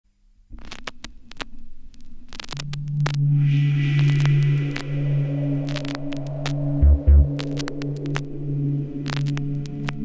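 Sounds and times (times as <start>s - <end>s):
vinyl surface crackle and clicks: 0.5s - 10.0s
deep steady synth tone: 3.1s - 10.0s
airy high synth pad: 3.2s - 10.0s
low rumble: 3.2s - 10.0s.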